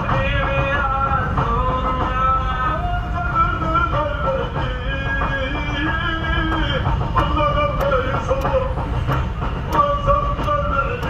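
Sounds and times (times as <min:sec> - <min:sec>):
car driving on highway rumble: 0:00.0 - 0:11.0
sharp percussive taps: 0:03.6 - 0:11.0.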